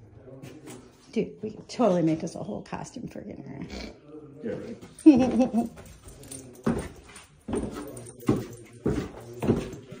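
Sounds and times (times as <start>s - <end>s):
heavy footsteps down stairs: 4.8s - 10.0s.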